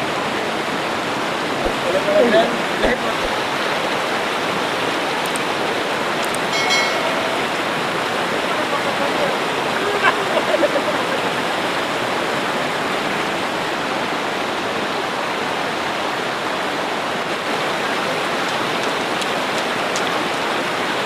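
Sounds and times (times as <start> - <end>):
river rushing: 0.0 - 21.0.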